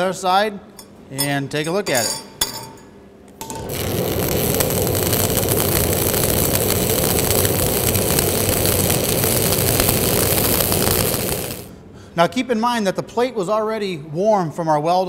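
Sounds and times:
welding arc crackling: 3.4 - 11.8.

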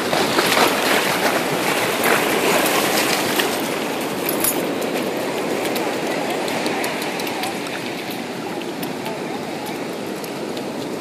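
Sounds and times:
ocean surf washing over sand: 0.0 - 11.0.

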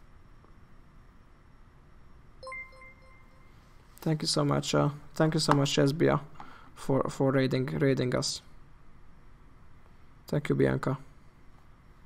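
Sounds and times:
bright ringing alert chime: 2.4 - 3.7.

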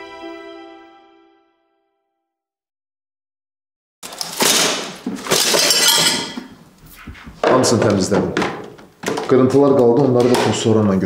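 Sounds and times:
broken glass clattering into box: 4.0 - 6.5.

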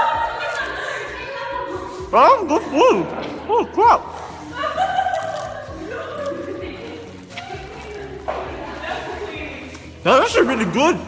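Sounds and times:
close talk: 0.0 - 11.0.

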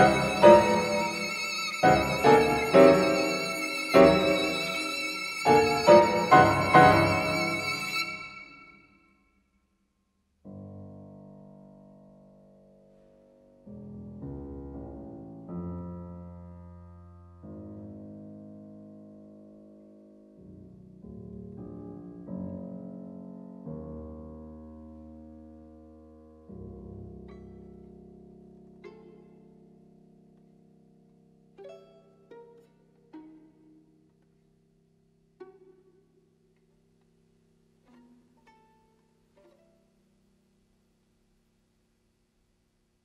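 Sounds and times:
violin pizzicato notes: 0.0 - 8.8, 26.8 - 30.5, 31.5 - 34.4, 35.4 - 36.2, 37.8 - 40.0.

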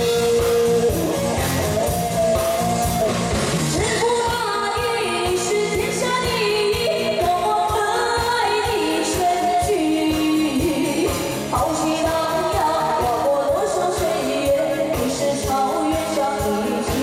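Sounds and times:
backing music with drum beat: 0.0 - 17.0
woman singing pop song: 3.7 - 17.0.

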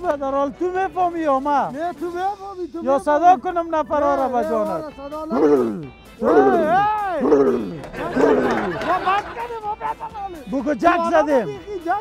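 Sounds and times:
man exclaiming: 5.2 - 8.9.

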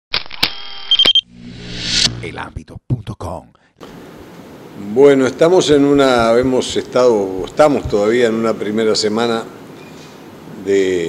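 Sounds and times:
rising whoosh: 1.2 - 2.5.

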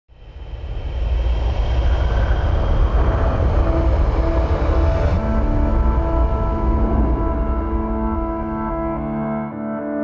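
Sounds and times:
deep rumbling whoosh: 0.1 - 9.5
sustained music notes: 2.4 - 10.0.

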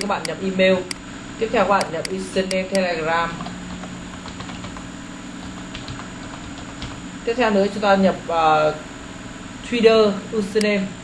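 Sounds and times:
computer keyboard typing: 0.0 - 1.0, 1.8 - 7.0
steady low hum: 0.0 - 11.0.

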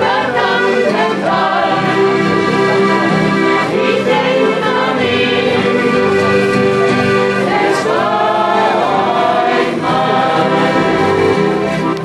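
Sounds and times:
button accordions playing folk tune: 0.0 - 12.0.

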